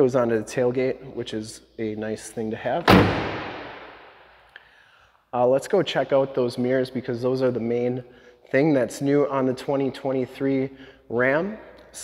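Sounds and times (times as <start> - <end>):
tailgate slamming shut: 2.9 - 3.7.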